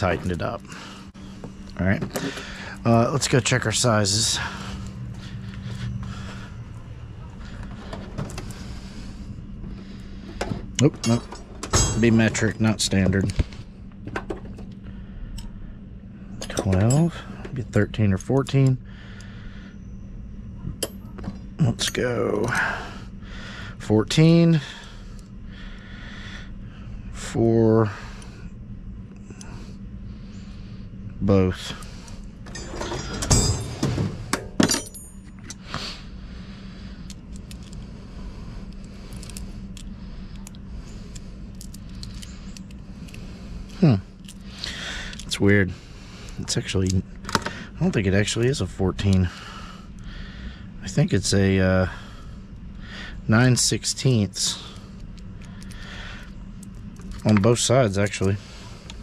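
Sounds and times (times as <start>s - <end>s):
steady low hum: 0.0s - 59.0s
wrenches clinking: 32.5s - 35.5s.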